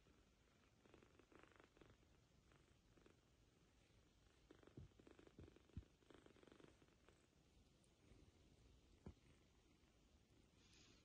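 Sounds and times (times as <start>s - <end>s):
kitten purring: 0.0s - 11.0s.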